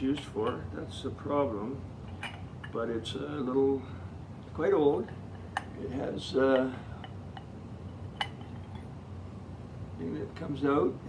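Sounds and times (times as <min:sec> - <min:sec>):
porcelain clink: 0:02.1 - 0:02.8, 0:08.1 - 0:08.9.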